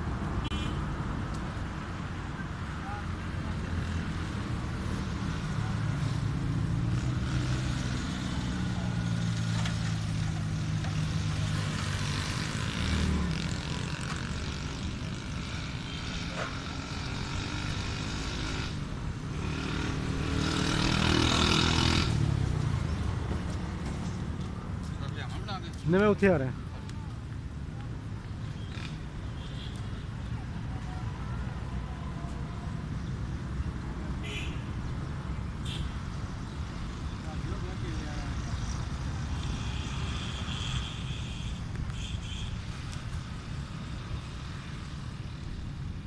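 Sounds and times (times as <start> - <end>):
vehicles passing: 0.0 - 46.0.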